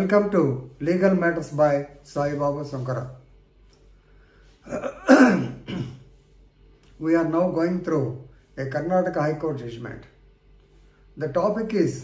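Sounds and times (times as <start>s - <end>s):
man coughing: 4.6s - 6.1s.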